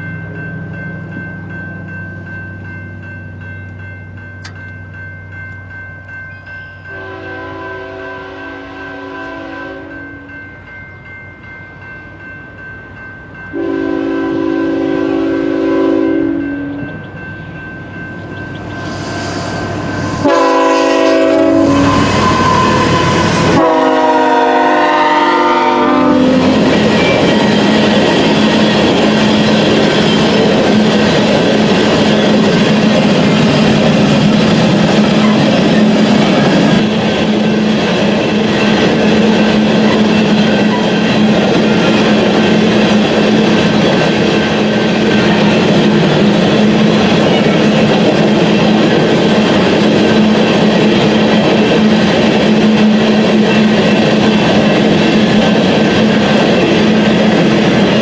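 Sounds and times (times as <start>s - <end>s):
locomotive air horn blasts: 6.9s - 10.3s, 13.5s - 16.8s, 20.2s - 27.2s
locomotive rumble: 13.6s - 58.0s.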